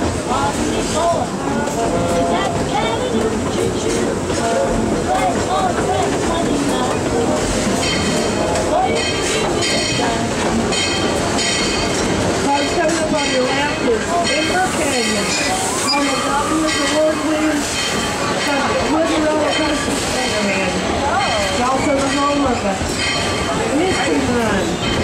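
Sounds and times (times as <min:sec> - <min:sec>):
train car rolling along track: 0:00.0 - 0:25.0.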